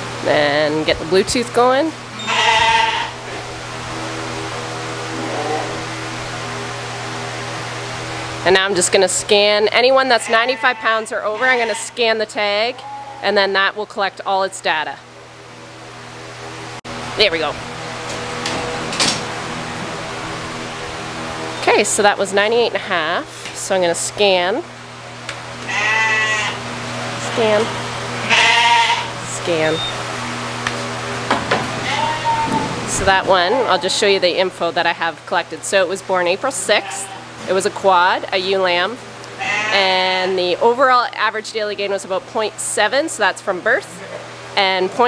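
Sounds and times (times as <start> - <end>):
steady low hum: 0.0 - 45.0
lamb bleating: 2.1 - 3.2, 10.0 - 12.1, 25.7 - 26.6, 27.3 - 29.1, 31.8 - 32.7, 36.7 - 37.2, 39.4 - 40.0.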